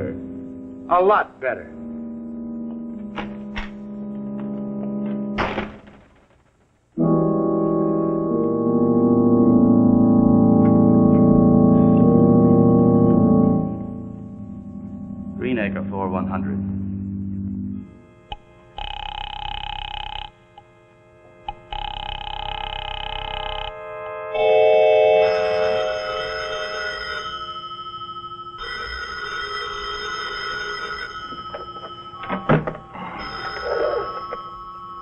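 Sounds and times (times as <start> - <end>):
music cue: 7.0 - 17.9
telephone bell ringing: 24.4 - 35.0.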